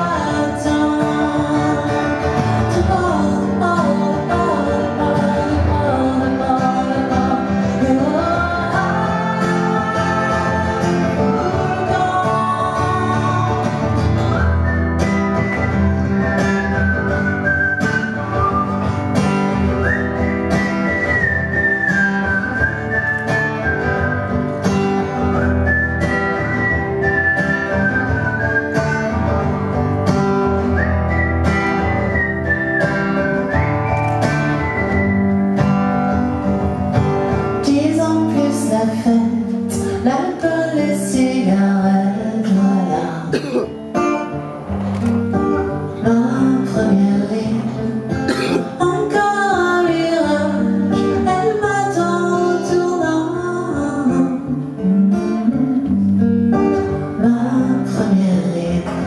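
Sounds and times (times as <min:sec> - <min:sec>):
acoustic guitar song: 0:00.0 - 0:59.0.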